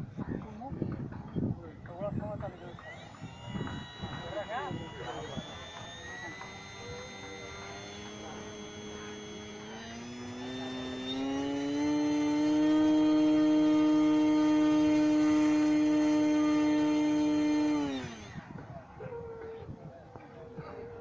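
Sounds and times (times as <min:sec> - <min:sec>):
model airplane motor whine: 0:00.0 - 0:21.0.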